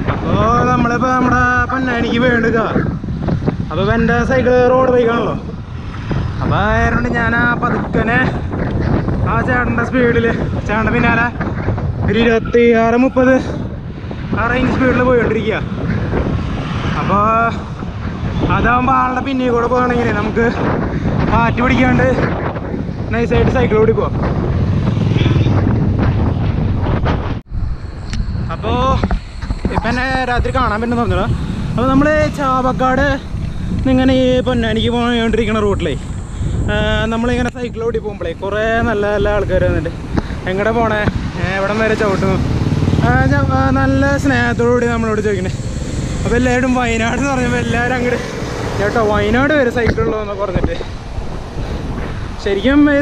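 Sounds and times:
road rumble: 0.0 - 53.0
wind buffeting microphone: 0.0 - 53.0
person talking: 28.5 - 45.6, 46.2 - 51.0.

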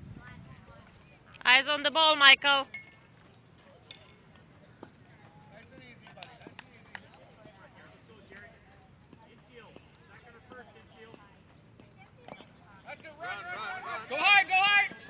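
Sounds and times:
distant people chattering: 0.0 - 15.0.

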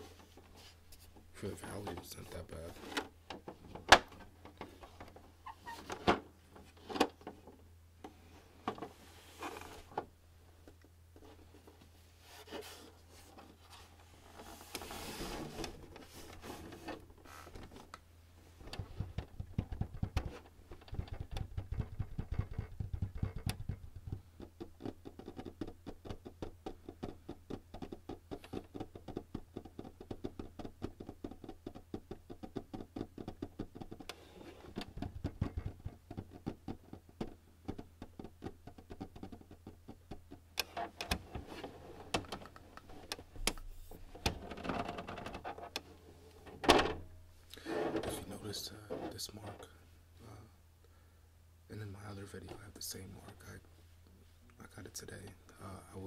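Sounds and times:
handling knocks and rubs: 8.7 - 17.9
fingertips tapping on plastic: 18.6 - 40.7.

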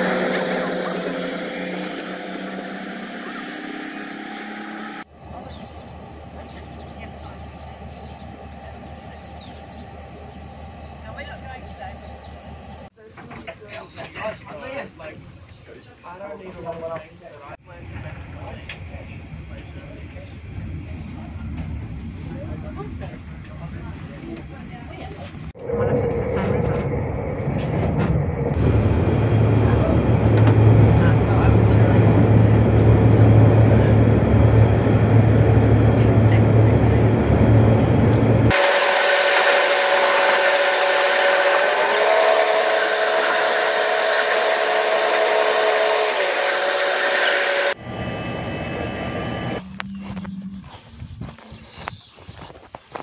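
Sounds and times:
train rumble with deep hum: 17.5 - 52.0
high metallic squeal: 38.5 - 49.6.

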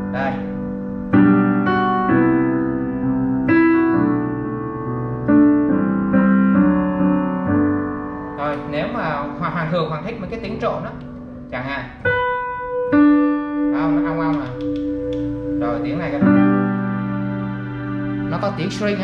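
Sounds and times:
piano chords: 0.0 - 19.0
man talking: 0.1 - 0.5, 8.4 - 12.0.

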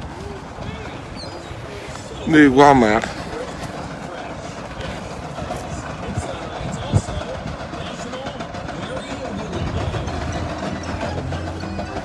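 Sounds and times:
indistinct voices: 0.0 - 12.0
low engine-like hum: 0.0 - 12.0.

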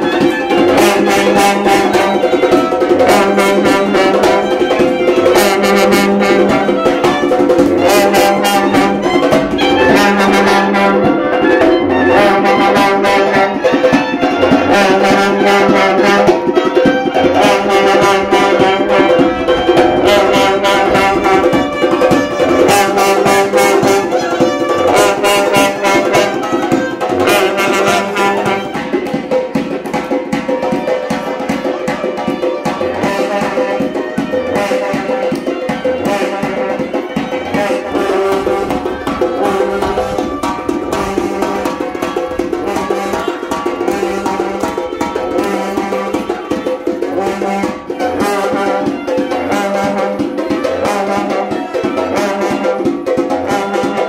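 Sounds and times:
frame drum beating: 0.0 - 54.0
reed pipe melody: 0.0 - 54.0
long brass horns sustained notes: 5.3 - 28.8, 36.0 - 52.8
low drone: 17.6 - 23.3.

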